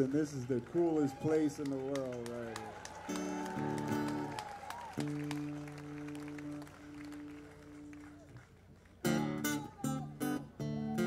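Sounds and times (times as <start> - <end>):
audience clapping: 0.0 - 9.9.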